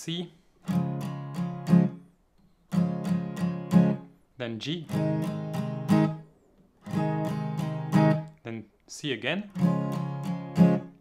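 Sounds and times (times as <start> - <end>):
acoustic guitar strumming: 0.6 - 8.4, 9.5 - 11.0.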